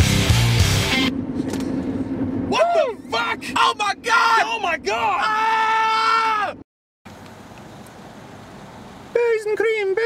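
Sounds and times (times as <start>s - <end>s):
car engine hum and road noise: 0.0s - 10.0s.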